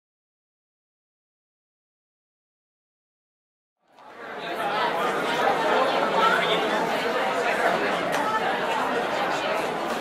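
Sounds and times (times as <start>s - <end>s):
crowd of voices talking: 3.9s - 10.0s.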